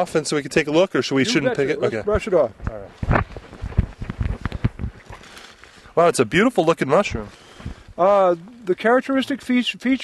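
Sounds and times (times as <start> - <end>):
hands rustling forest litter: 4.4 - 8.7.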